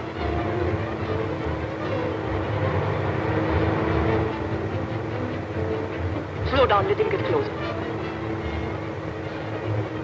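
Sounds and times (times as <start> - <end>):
car engine and road noise: 0.0 - 10.0.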